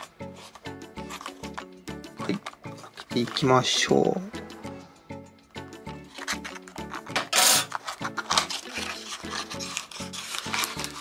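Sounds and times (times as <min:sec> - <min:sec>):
cardboard and plastic scraping: 0:00.0 - 0:03.6, 0:06.0 - 0:11.0
background music: 0:00.0 - 0:11.0.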